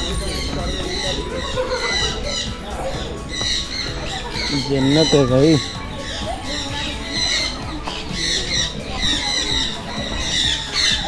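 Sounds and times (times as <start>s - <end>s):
birds chirping and calling: 0.0s - 11.0s.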